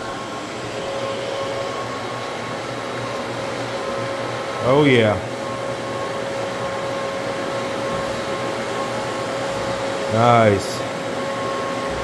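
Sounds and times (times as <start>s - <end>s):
dust extractor whining: 0.0s - 12.0s
floor buffer droning: 0.0s - 12.0s.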